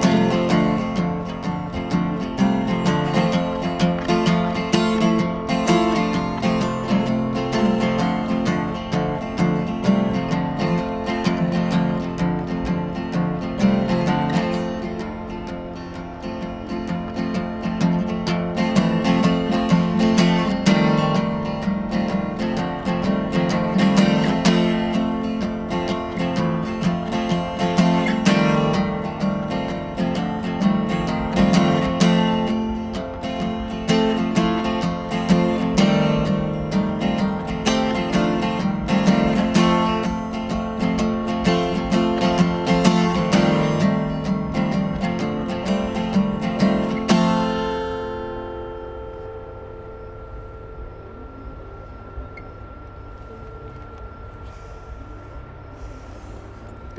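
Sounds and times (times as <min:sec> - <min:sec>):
acoustic guitar playing: 0:00.0 - 0:56.7.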